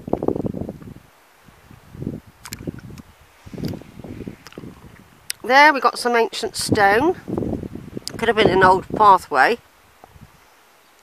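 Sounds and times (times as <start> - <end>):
wind rumble on microphone: 0.0 - 10.5.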